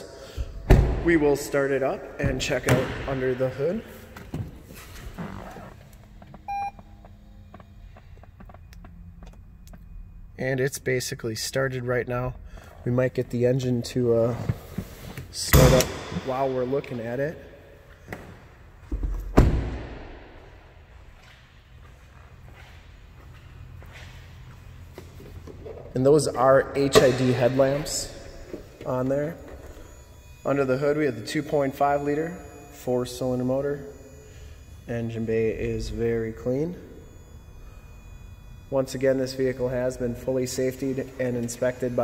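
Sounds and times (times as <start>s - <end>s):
low steady hum: 0.0s - 42.0s
short electronic beep: 6.5s - 8.8s
soft footsteps: 21.0s - 26.0s.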